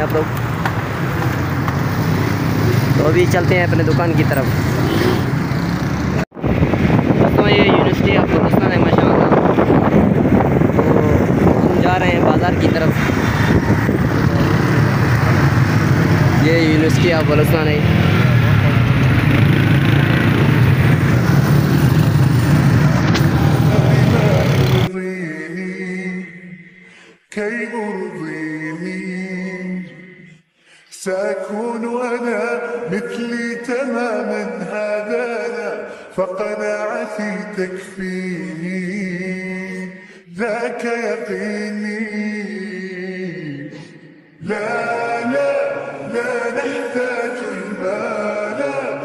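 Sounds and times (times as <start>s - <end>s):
passing street traffic: 0.0s - 24.9s
road and wind rumble: 0.0s - 24.9s
motorcycle engine hum: 9.4s - 24.9s.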